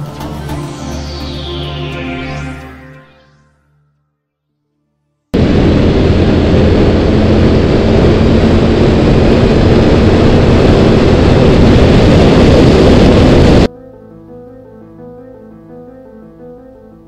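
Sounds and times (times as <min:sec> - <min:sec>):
wind buffeting microphone: 0:05.4 - 0:13.7.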